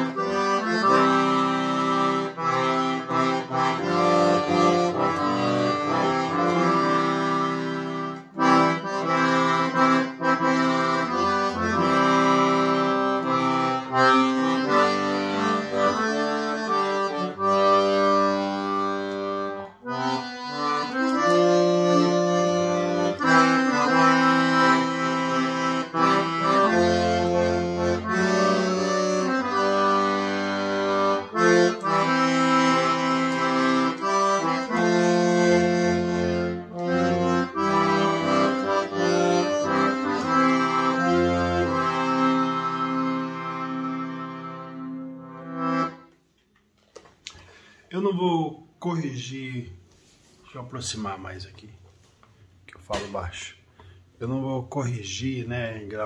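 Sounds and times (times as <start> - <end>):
piano accordion playing a hymn: 0.0 - 46.2.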